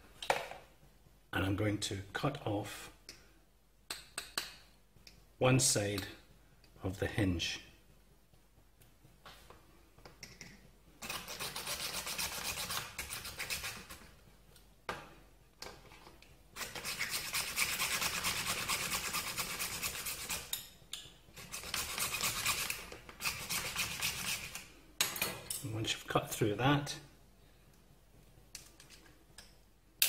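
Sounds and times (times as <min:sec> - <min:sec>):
hacksaw sawing through shell: 0:16.6 - 0:20.5, 0:21.4 - 0:24.6.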